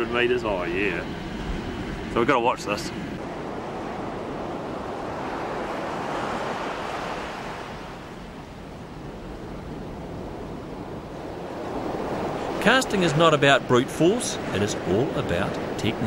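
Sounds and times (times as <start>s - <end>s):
ocean waves breaking on beach: 2.2s - 16.0s.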